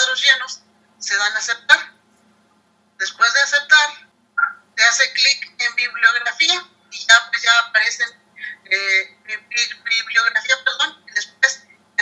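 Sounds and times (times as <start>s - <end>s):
woman talking over video call: 0.0s - 2.0s, 3.0s - 11.8s.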